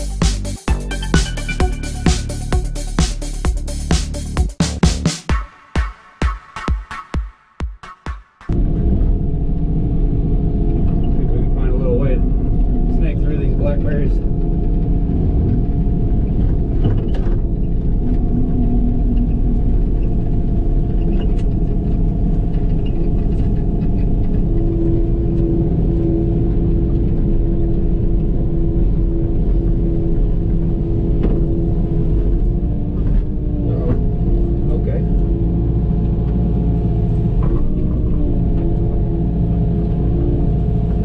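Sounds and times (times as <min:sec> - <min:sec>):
excavator engine and hydraulics: 0:08.5 - 0:41.0
steady hum: 0:08.5 - 0:41.0.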